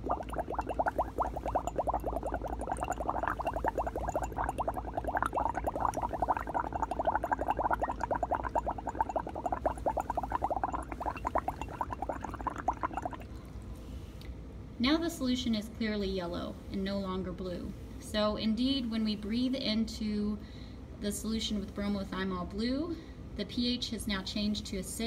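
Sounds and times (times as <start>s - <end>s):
blowing bubbles through straw: 0.0s - 13.4s.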